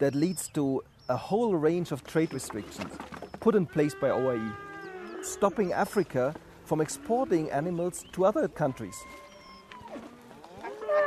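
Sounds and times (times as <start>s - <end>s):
cattle mooing: 3.7s - 7.8s, 8.8s - 11.0s.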